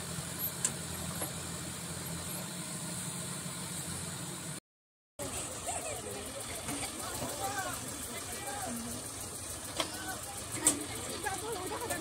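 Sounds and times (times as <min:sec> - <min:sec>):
tractor engines idling: 0:00.0 - 0:04.6, 0:05.2 - 0:12.0
people calling out: 0:05.2 - 0:09.2, 0:09.8 - 0:12.0.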